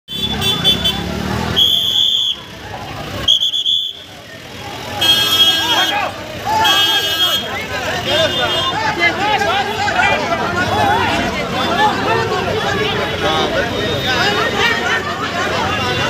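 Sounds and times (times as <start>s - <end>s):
vehicle horns honking: 0.1s - 2.6s, 3.2s - 4.1s, 4.9s - 9.0s
voices shouting: 0.8s - 16.0s.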